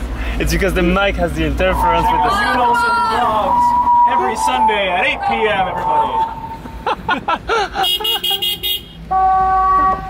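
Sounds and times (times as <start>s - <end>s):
steady electronic horn tone: 1.7s - 6.7s.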